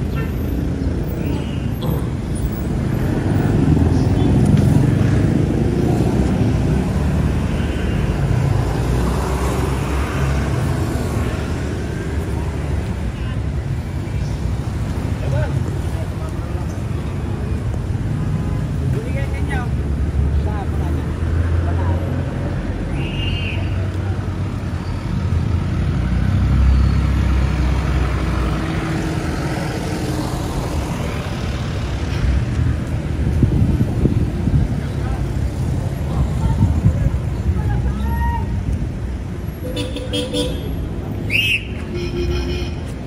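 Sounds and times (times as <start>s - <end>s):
vehicle engines rumbling: 0.0s - 43.0s.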